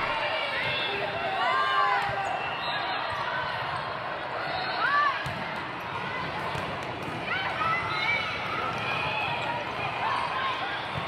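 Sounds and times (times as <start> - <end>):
volleyballs hit and bouncing: 5.1 - 11.0.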